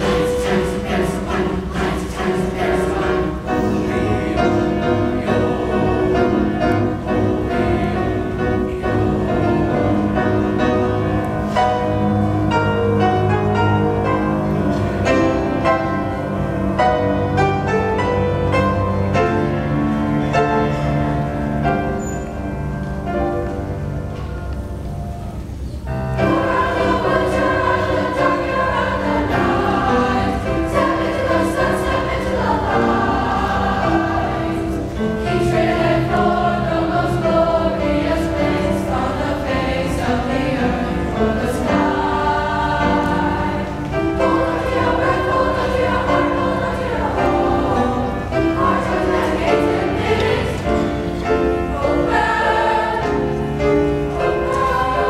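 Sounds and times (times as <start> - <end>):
choir singing in parts: 0.0 - 22.0, 26.2 - 55.0.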